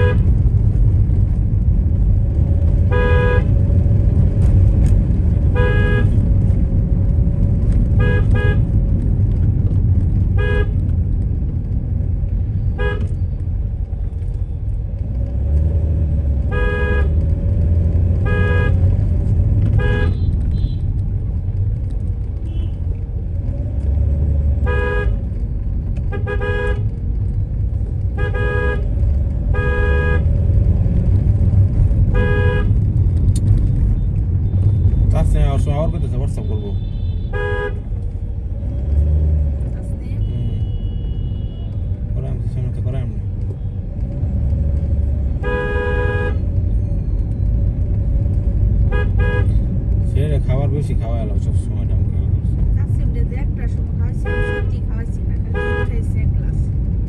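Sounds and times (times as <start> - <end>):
car horn tooting: 0.0 - 0.3, 2.9 - 3.6, 5.5 - 6.2, 7.9 - 8.7, 10.4 - 10.8, 12.7 - 13.2, 16.4 - 17.2, 18.2 - 18.9, 19.7 - 20.9, 24.6 - 25.2, 26.0 - 26.9, 28.1 - 30.4, 32.1 - 32.8, 36.2 - 37.9, 40.1 - 42.0, 45.3 - 46.5, 48.8 - 49.6, 54.1 - 56.1
car driving slowly: 0.0 - 57.0.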